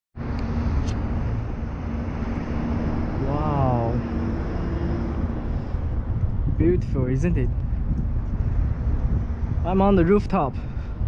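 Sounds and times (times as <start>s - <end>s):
constant low hum: 0.2s - 11.0s
distant city traffic rumble: 0.2s - 11.0s.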